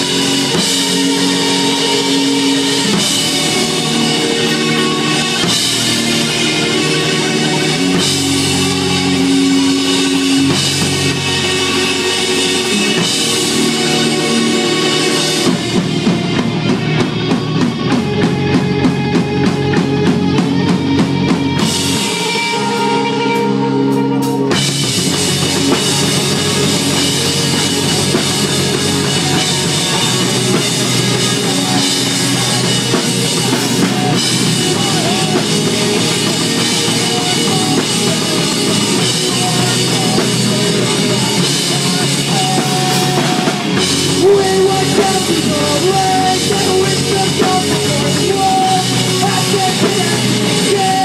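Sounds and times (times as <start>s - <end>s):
fast drum beat: 0.0s - 22.5s, 24.5s - 51.0s
punk rock band playing live: 0.0s - 51.0s.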